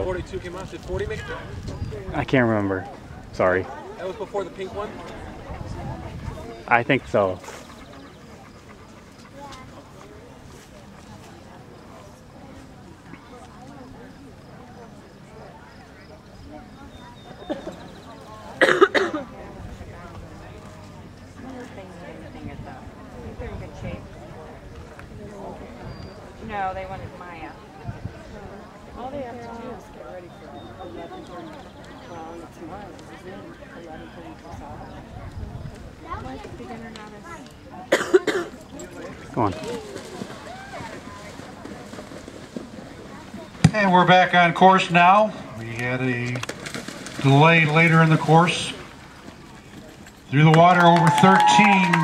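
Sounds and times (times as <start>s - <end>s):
faint background voices: 0.0s - 52.0s
person coughing: 37.9s - 38.5s.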